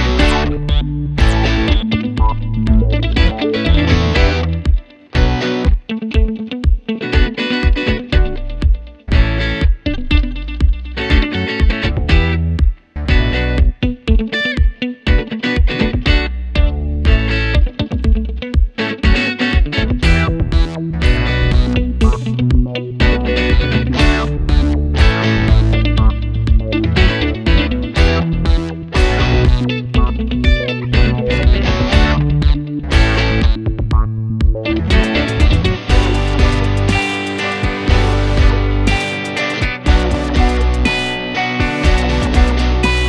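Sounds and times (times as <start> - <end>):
guitar-led background music: 0.0 - 43.0.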